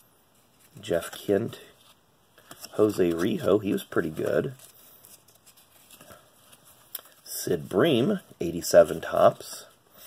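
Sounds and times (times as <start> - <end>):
trading cards rustling and sliding: 0.3 - 10.0.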